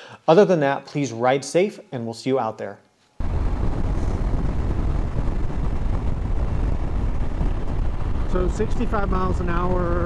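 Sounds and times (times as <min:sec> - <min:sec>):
motorcycle riding wind noise: 0:03.2 - 0:10.0.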